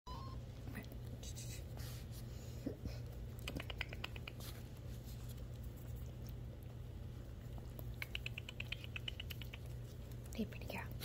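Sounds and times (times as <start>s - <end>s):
low steady hum: 0.1s - 11.0s
kitten claws scratching carpet: 1.0s - 2.4s, 3.0s - 11.0s.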